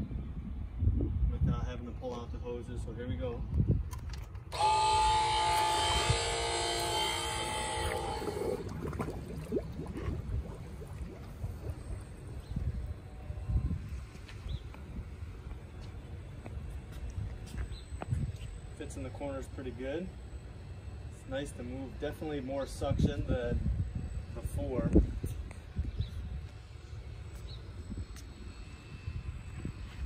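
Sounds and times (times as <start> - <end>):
pool vacuum whining: 4.4 - 30.0
low rumble: 6.1 - 15.7.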